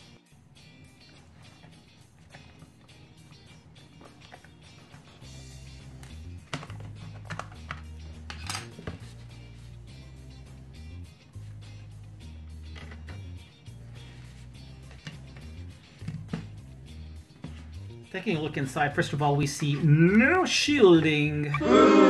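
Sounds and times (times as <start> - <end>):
background music with bass line: 0.0 - 22.0
plastic case clicks and clacks: 6.0 - 9.0.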